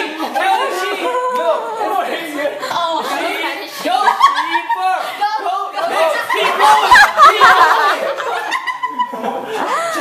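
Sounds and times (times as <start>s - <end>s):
people laughing: 0.0s - 10.0s
people speaking: 0.0s - 10.0s.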